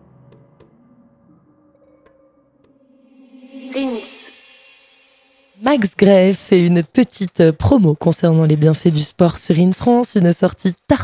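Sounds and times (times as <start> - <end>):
faint electronic music: 0.0 - 9.1
voice-like downward sweep: 2.9 - 5.7
high hiss: 3.1 - 5.8.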